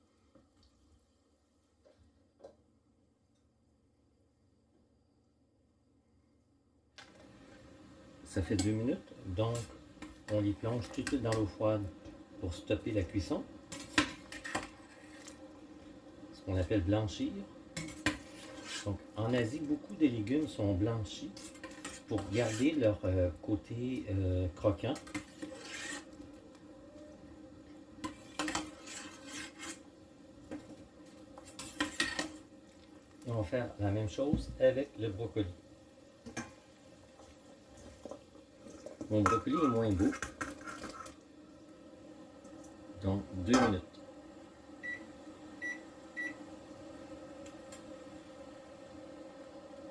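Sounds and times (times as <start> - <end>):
faint steady hum: 0.0 - 49.9
boiling water: 7.0 - 49.9
utensil scraping a saucepan: 9.4 - 11.6, 13.2 - 15.5, 17.8 - 20.5, 21.2 - 23.2, 24.6 - 26.4, 28.0 - 29.9, 31.4 - 32.4, 38.6 - 41.2.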